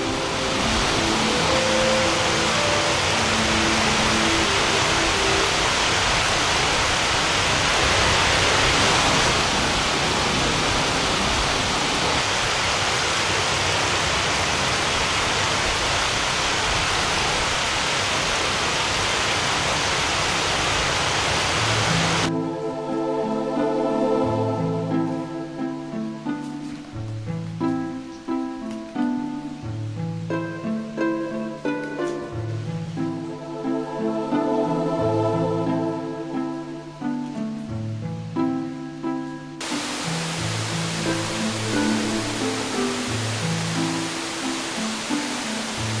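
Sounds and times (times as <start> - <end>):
music: 0.0 - 6.3, 21.8 - 46.0
steady rushing hiss: 0.0 - 46.0.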